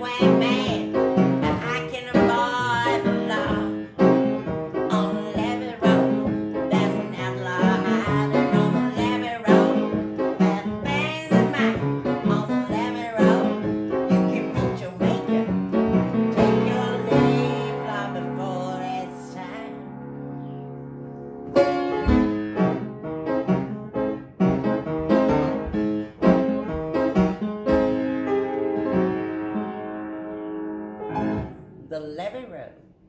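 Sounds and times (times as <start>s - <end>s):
woman singing: 0.0s - 3.9s, 4.8s - 15.5s, 16.4s - 20.6s
blues piano: 0.0s - 32.0s.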